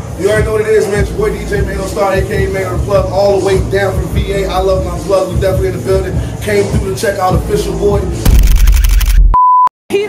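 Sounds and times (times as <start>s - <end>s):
hip-hop beat with heavy bass: 0.3s - 9.4s
high beep: 9.2s - 9.7s.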